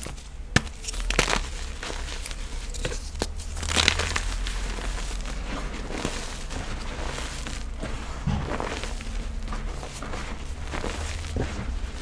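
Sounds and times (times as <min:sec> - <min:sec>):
chalk crunching in hands: 0:00.0 - 0:12.0
dull thump: 0:07.9 - 0:09.7.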